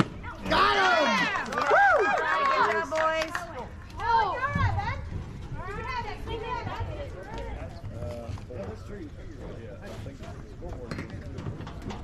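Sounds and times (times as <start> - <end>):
crowd cheering and whooping: 0.5 - 3.0.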